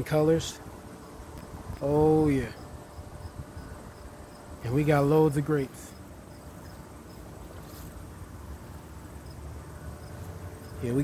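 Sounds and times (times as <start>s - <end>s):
insect chirring: 0.6s - 11.0s.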